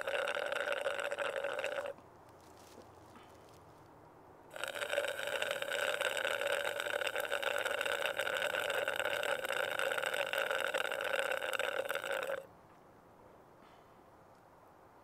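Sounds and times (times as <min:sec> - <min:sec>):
slurping through a straw: 0:00.0 - 0:02.0, 0:04.5 - 0:12.4.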